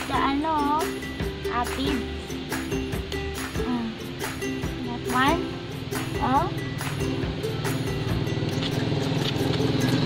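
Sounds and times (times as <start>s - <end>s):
background music with low tones: 0.0s - 10.0s.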